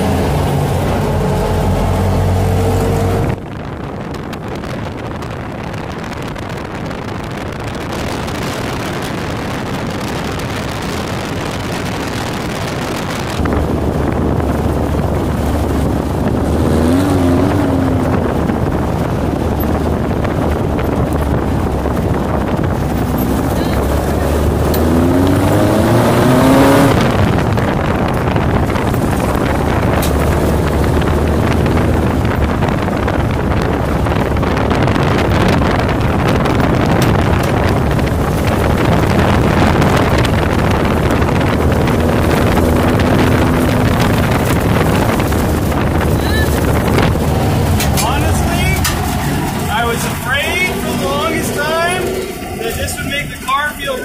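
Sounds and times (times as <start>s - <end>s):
car engine revving: 0.0s - 54.0s
tyres rolling over loose stones: 41.9s - 54.0s.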